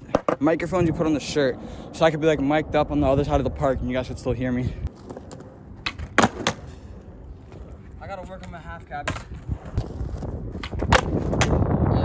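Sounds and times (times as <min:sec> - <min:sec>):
skateboard clacks: 0:00.0 - 0:00.6, 0:05.0 - 0:06.7, 0:07.5 - 0:11.6
skateboard wheels rolling on concrete: 0:00.0 - 0:12.0.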